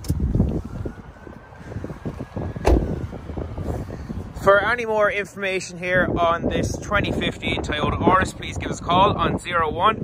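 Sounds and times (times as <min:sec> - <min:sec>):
wind rumbling on microphone: 0:00.0 - 0:10.0
sharp thump: 0:02.6 - 0:03.0.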